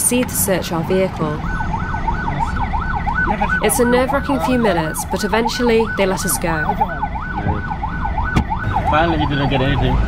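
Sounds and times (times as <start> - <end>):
traffic and engine rumble: 0.0 - 10.0
siren wailing: 0.8 - 10.0.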